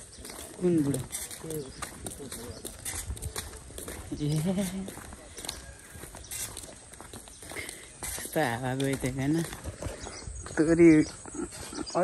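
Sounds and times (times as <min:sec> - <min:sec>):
footsteps on road: 0:00.0 - 0:12.0
bicycle rattle: 0:00.1 - 0:03.2.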